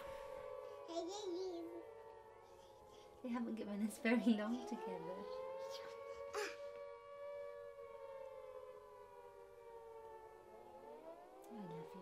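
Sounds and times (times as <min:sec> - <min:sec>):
faint air-raid siren wailing: 0:00.0 - 0:12.0.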